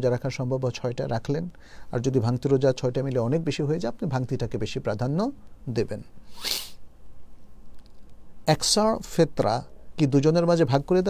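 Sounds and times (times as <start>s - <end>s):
man sniffing: 6.3s - 6.8s.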